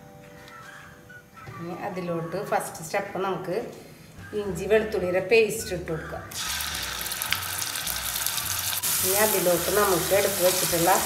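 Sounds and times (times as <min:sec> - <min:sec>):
oil crackling: 0:06.3 - 0:11.0
paste sizzling in hot oil: 0:06.3 - 0:11.0.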